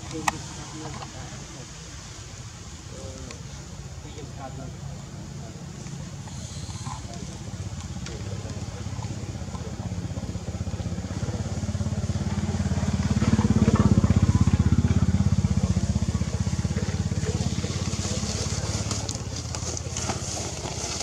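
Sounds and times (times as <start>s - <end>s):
vehicle engine running: 0.0s - 21.0s.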